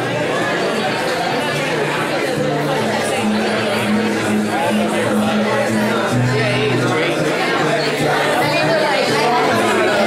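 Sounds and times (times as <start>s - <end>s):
acoustic guitars playing: 0.0s - 10.0s
people chattering: 0.0s - 10.0s.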